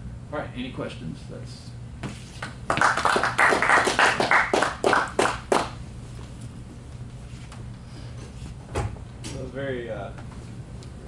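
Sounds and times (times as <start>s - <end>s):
audience applauding: 2.7s - 5.8s.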